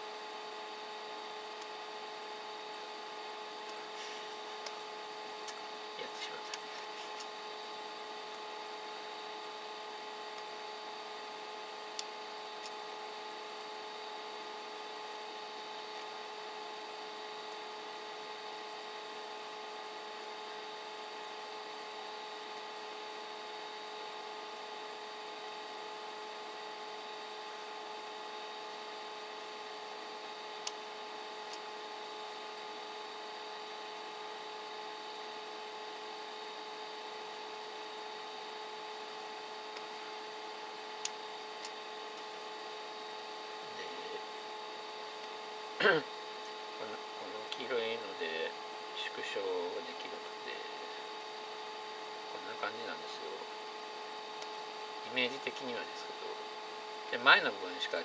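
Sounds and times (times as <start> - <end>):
machine hum and hiss: 0.0 - 58.0.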